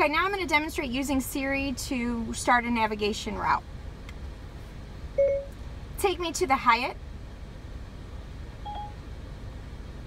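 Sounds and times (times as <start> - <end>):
short electronic beep: 5.2 - 5.5, 8.7 - 9.0.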